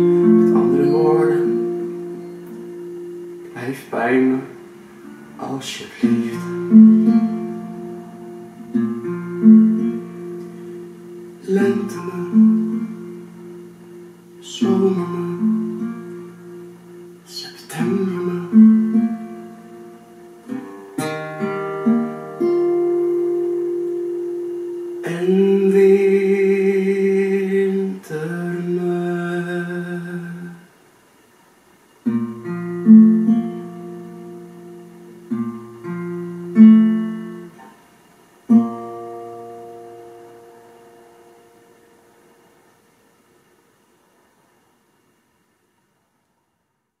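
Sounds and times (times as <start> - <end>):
acoustic guitar plucked note: 0.0 - 30.6, 32.1 - 37.8, 38.5 - 42.6.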